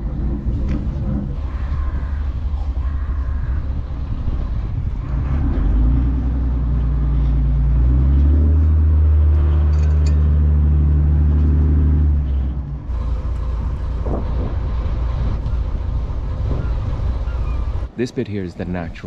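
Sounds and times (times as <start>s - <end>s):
boat engine humming: 0.0s - 19.0s.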